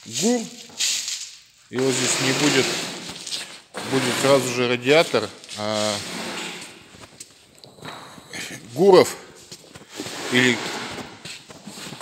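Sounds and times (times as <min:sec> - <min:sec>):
footsteps scuffing on floor: 0:00.0 - 0:03.9, 0:09.2 - 0:12.0.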